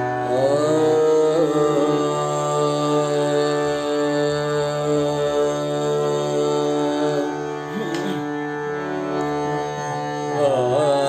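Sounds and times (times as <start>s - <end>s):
man singing long notes: 0.0s - 8.4s, 9.8s - 11.0s
harmonium: 0.0s - 11.0s
tanpura drone: 0.0s - 11.0s.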